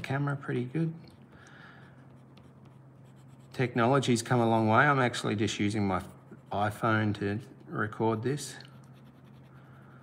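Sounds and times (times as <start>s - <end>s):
pencil scratching on paper: 2.0s - 4.2s, 5.7s - 10.0s.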